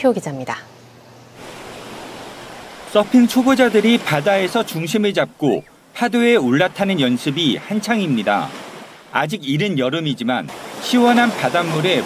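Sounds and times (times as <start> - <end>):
sea waves rushing: 1.4 - 12.0.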